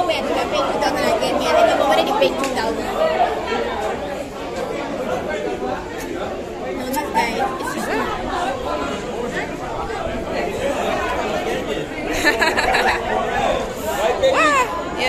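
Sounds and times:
crowd chatter: 0:00.0 - 0:15.0.

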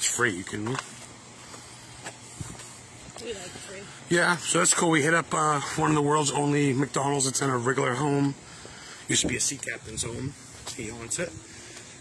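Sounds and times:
steady outdoor background noise: 0:00.0 - 0:12.0.

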